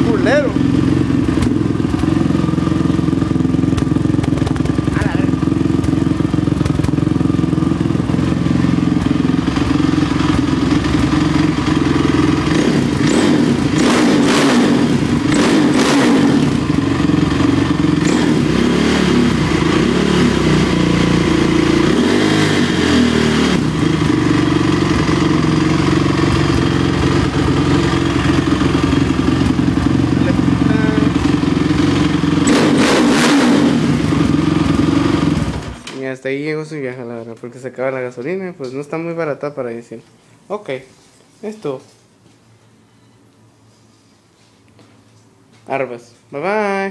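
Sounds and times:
atv engine running and revving: 0.0 - 35.8.

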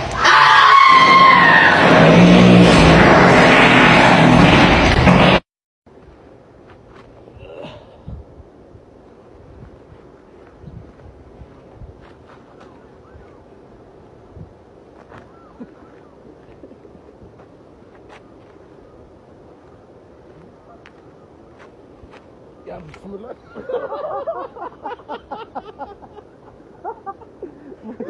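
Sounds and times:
harsh rushing noise with squeal: 0.0 - 5.5.

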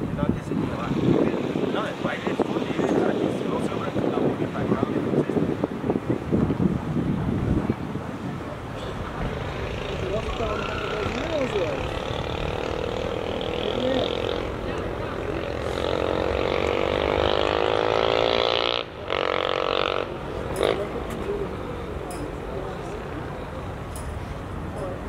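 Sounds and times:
distant voices: 0.0 - 25.0
vehicle engine revving up: 9.5 - 21.0.

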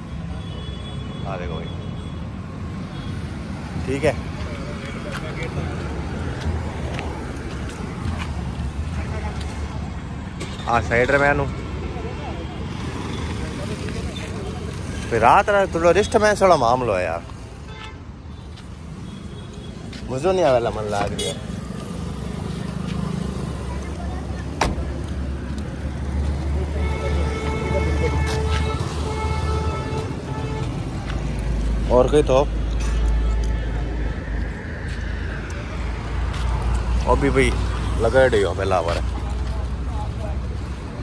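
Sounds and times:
traffic rumble: 0.0 - 41.0.

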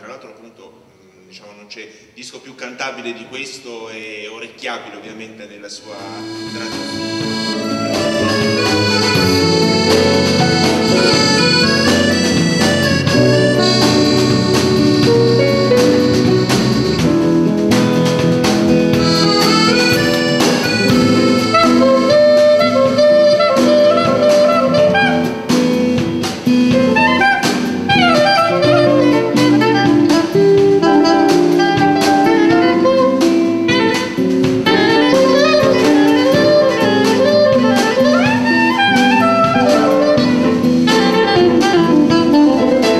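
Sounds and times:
jazz band playing: 5.7 - 42.9
soprano saxophone lead: 5.8 - 42.9
accordion: 6.0 - 33.2.

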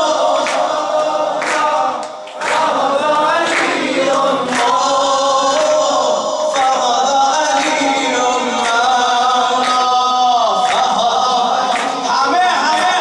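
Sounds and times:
man singing devotional song: 0.0 - 13.0
other voices singing: 0.0 - 13.0.

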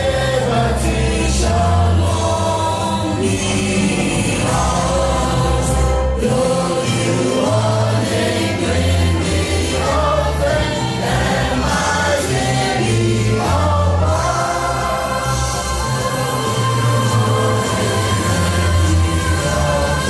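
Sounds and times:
choir singing: 0.0 - 20.0
sustained bass accompaniment: 0.0 - 20.0.

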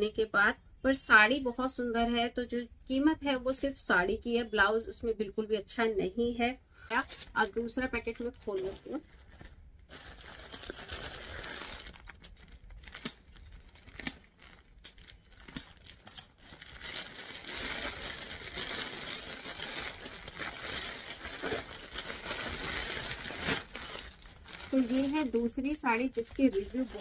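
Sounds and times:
plastic bag crackling and tearing: 6.9 - 27.0
plastic bag crinkling: 6.9 - 27.0.

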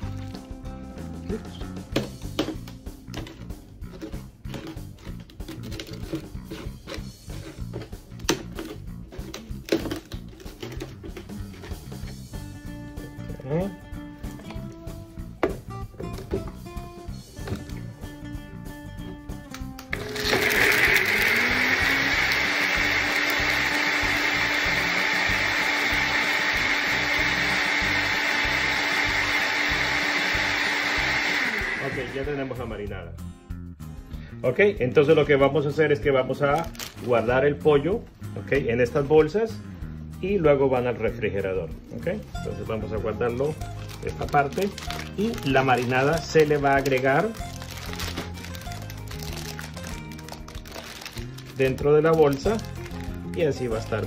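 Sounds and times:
background music: 0.0 - 54.0
blender motor running: 19.9 - 32.7, 43.8 - 53.8.

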